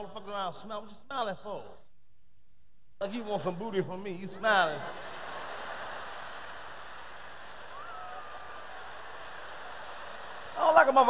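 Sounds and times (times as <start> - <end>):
audience laughing and applauding: 4.6 - 11.0.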